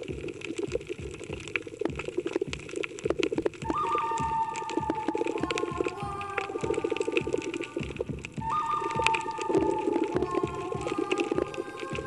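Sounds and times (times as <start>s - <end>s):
underwater crackling clicks: 0.0s - 12.0s
underwater water noise: 0.0s - 12.0s
held musical tone: 3.4s - 12.0s.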